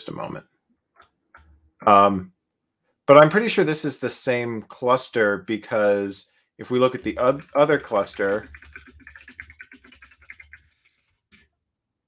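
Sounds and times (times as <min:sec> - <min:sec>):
fast typing on keyboard: 0:06.9 - 0:11.4.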